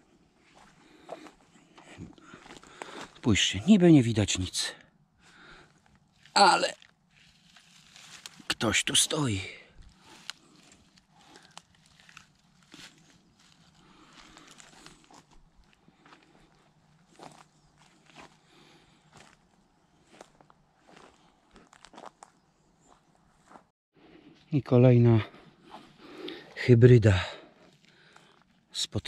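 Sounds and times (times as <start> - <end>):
footsteps on forest floor: 0.4 - 3.6, 5.2 - 23.7, 27.6 - 28.6
twigs snapping underfoot: 5.8 - 8.5, 9.9 - 15.8.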